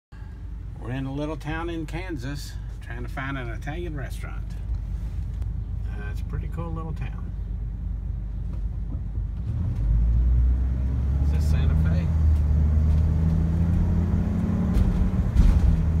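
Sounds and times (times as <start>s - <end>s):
car engine rumble: 0.1s - 16.0s
road noise inside car: 0.2s - 16.0s.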